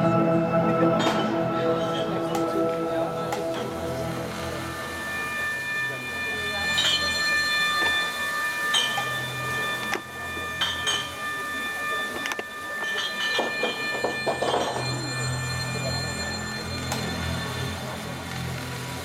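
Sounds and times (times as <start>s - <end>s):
low hum: 0.0s - 12.6s
high screechy electronic drones: 1.4s - 18.3s.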